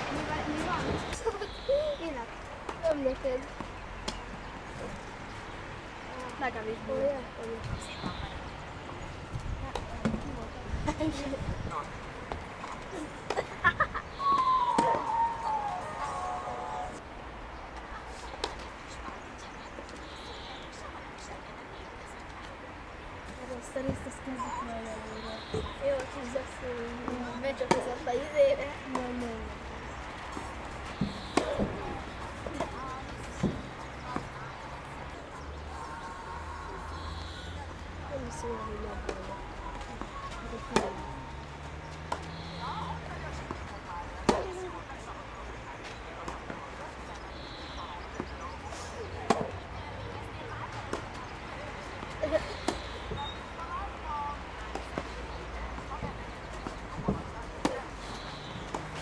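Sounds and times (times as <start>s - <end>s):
high-pitched falling tone: 14.2s - 17.0s
tennis ball struck by racket: 30.3s - 31.9s, 44.2s - 44.6s, 49.2s - 49.6s.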